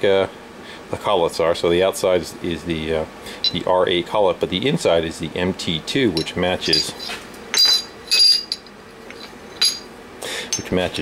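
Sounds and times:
steel tools clinking on metal table: 6.2s - 9.9s, 10.5s - 10.8s.

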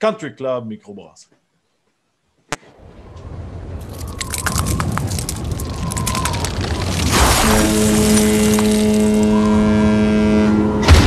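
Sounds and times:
rushing noise: 3.8s - 9.8s.

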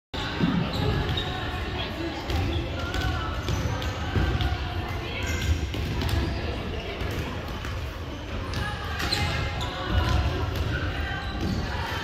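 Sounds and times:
players chattering: 0.2s - 12.0s
volleyballs bouncing on gym floor: 0.2s - 12.0s.

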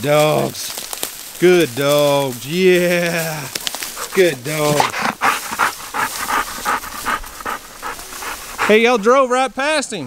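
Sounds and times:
dog panting: 3.8s - 9.2s.

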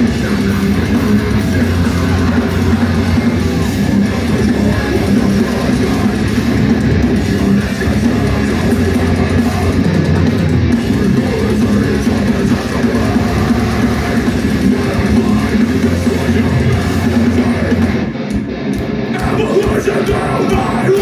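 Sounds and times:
distorted electric guitars: 0.0s - 21.0s
drum kit: 0.0s - 21.0s.

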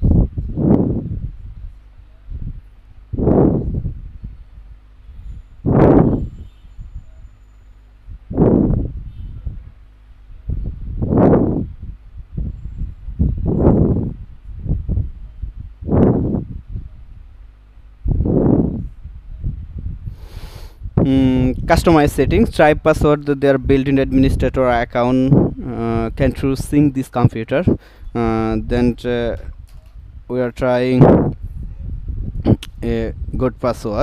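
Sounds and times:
faint steady hum: 0.0s - 34.0s
person breathing close: 20.1s - 20.8s, 27.8s - 28.1s.

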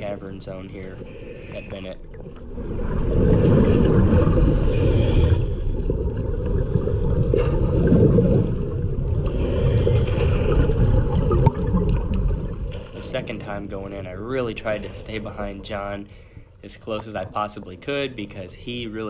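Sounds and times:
underwater current rushing and gurgling: 0.0s - 18.5s.

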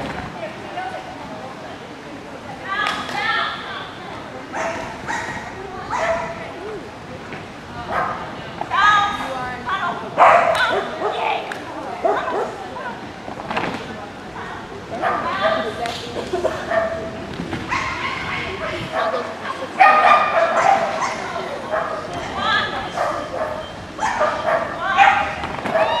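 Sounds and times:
dog barking and yipping: 4.6s - 6.3s, 17.7s - 18.4s, 19.8s - 26.0s.

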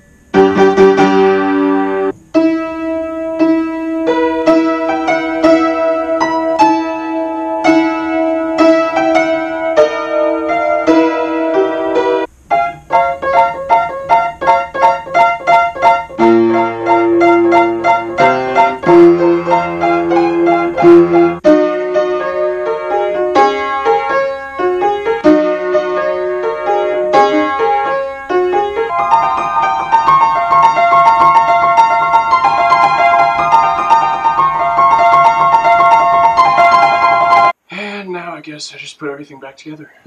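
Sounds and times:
upright piano notes and chords: 0.0s - 37.6s.

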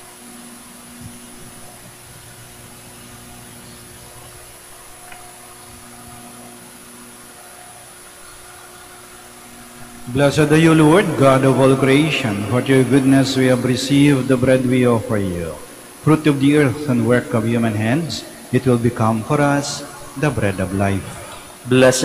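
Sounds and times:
steady hiss and low hum: 0.0s - 22.0s.

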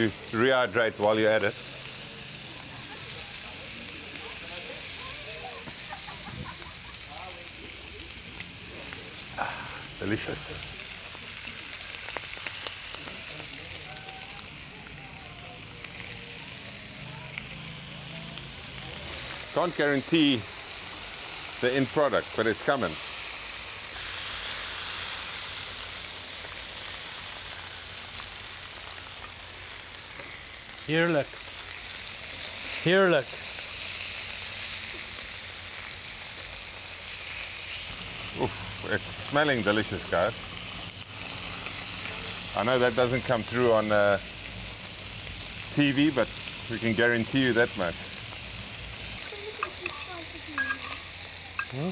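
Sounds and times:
meat sizzling on a griddle: 0.0s - 51.9s.

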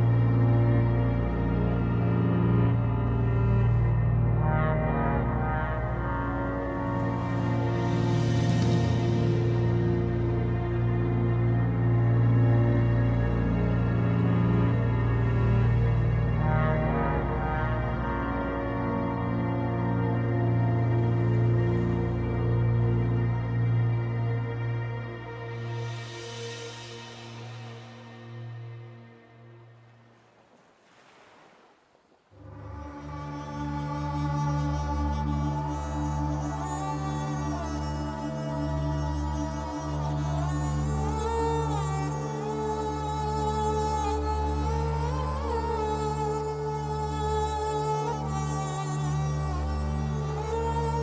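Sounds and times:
slow ambient music with drone: 0.0s - 30.1s, 32.4s - 51.0s
faint ocean surf: 24.1s - 33.2s.

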